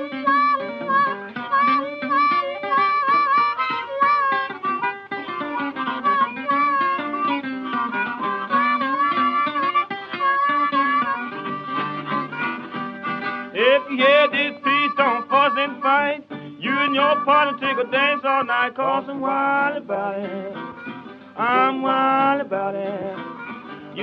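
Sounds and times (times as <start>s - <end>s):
plucked mandolin and strings: 0.0s - 14.5s
harmonica bending notes: 0.0s - 24.0s.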